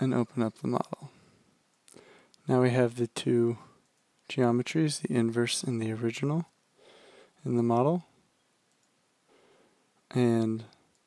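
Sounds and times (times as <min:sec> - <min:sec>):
faint computer mouse clicks: 0:08.7 - 0:09.0.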